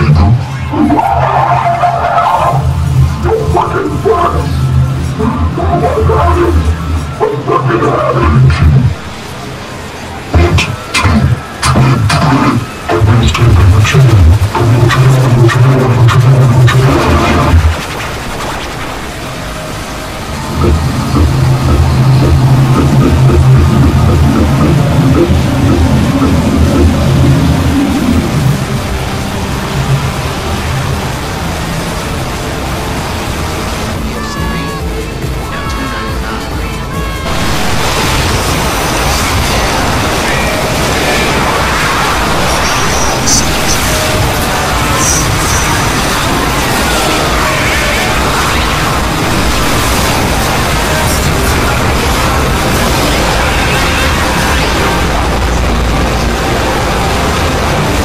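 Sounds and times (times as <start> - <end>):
loud distorted music: 0.0 - 58.0.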